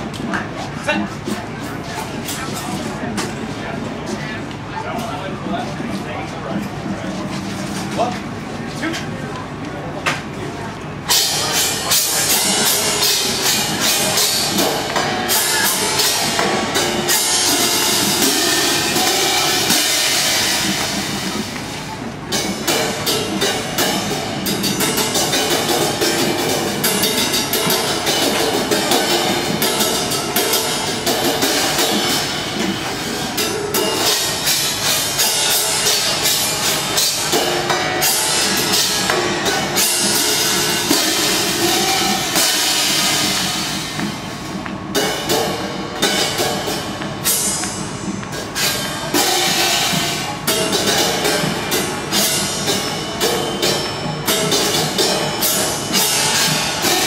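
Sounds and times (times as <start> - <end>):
crash cymbals playing rhythmically: 10.9 - 57.0.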